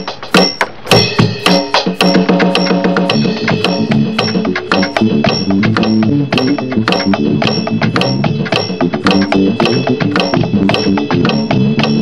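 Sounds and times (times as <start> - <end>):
electronic drum kit funk groove: 0.0 - 12.0.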